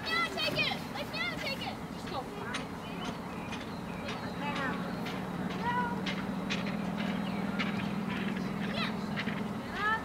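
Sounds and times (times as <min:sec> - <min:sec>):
outdoor soccer match noise: 0:00.0 - 0:10.0.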